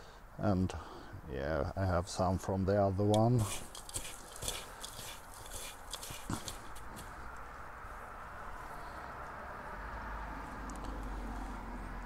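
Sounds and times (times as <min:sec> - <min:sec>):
faint background noise: 0:00.0 - 0:12.0
crackles and taps of handling roots: 0:03.0 - 0:07.6.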